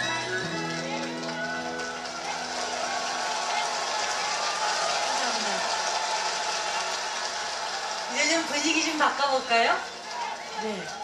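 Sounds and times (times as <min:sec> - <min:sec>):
audience applauding and cheering: 0:00.0 - 0:11.0.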